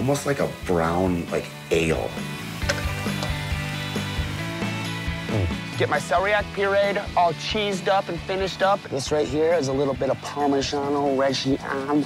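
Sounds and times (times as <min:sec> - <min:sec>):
background music of sustained tones: 0:00.0 - 0:12.0.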